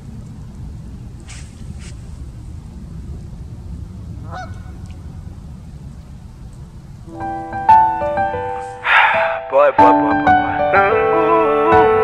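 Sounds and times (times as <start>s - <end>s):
low outdoor rumble: 0.0s - 9.8s
goose honk: 4.2s - 4.8s.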